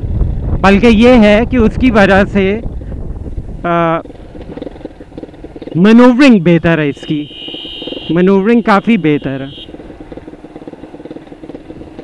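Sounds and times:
motorcycle engine rumble: 0.0s - 12.0s
riding wind: 0.0s - 12.0s.

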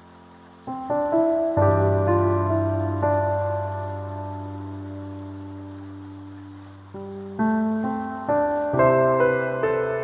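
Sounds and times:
falling rain hiss: 0.0s - 10.0s
slow calm piano music: 0.0s - 10.0s.

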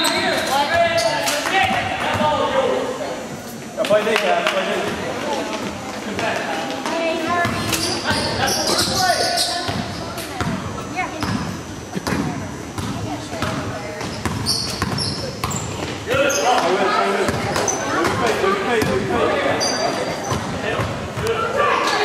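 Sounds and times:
sneaker squeaks: 0.0s - 2.4s, 7.2s - 21.4s
spectators' voices: 0.0s - 22.0s
basketball dribbled on hardwood floor: 11.2s - 15.6s.

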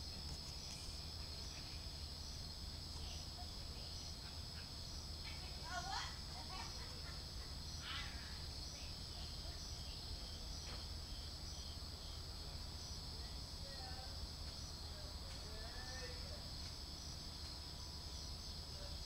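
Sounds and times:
night insects chirping: 0.0s - 19.0s
distant people talking: 2.8s - 19.0s.

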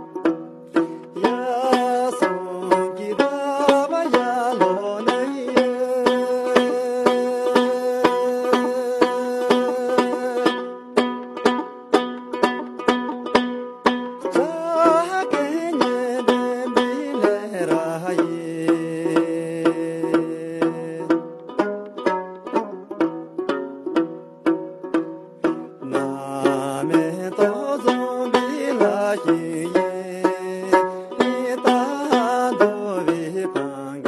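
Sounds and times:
lute strummed: 0.0s - 34.0s
man singing long notes: 0.8s - 11.1s, 14.2s - 21.6s, 25.7s - 34.0s.

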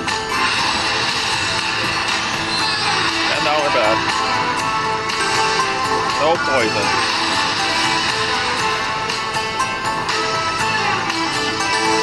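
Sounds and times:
slot machine music: 0.0s - 12.0s.

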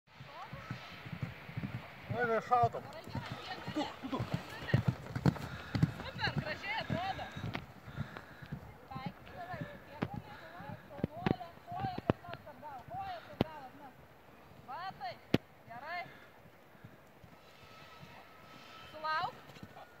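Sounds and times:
horse hoofbeats on grass: 0.1s - 13.8s.

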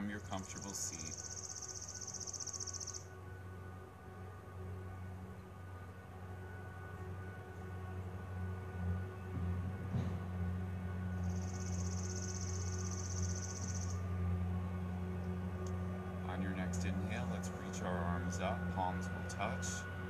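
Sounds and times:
low droning hum: 0.0s - 20.0s.

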